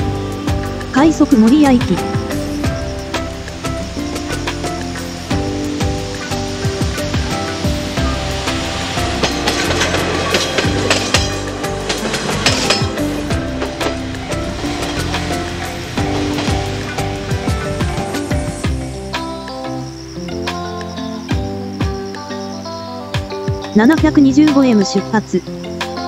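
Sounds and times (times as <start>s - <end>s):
rail clicks: 0.0s - 19.4s
railcar wheels on rails: 0.0s - 20.6s
background music: 0.0s - 26.0s.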